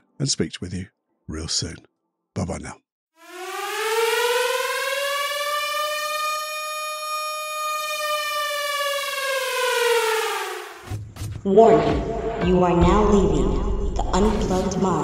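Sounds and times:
warning siren wailing: 3.2 - 10.9.

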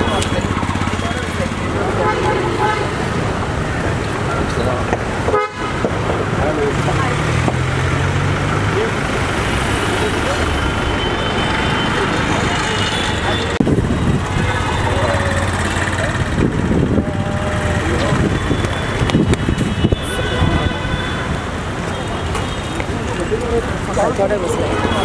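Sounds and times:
car horns honking: 0.0 - 3.4, 5.2 - 6.1, 9.8 - 15.9, 17.2 - 23.4, 24.5 - 25.0
city street traffic: 0.0 - 25.0
people's voices: 0.0 - 25.0.

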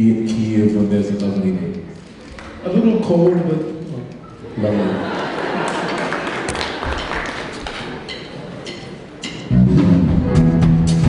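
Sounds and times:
murmur of large hall: 0.0 - 11.0.

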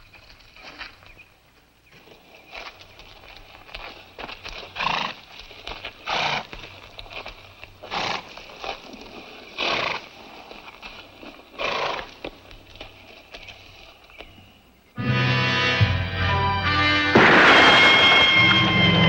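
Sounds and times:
horse blowing: 4.8 - 5.2.

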